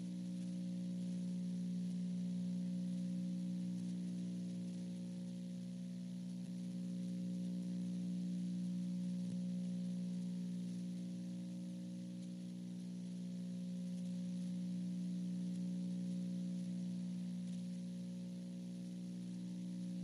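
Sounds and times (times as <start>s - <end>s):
electrical hum: 0.0s - 20.0s.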